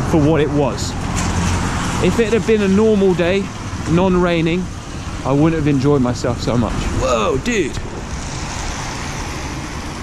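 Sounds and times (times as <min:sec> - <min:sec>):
rain: 0:00.0 - 0:10.0
traffic hiss on wet streets: 0:00.0 - 0:10.0.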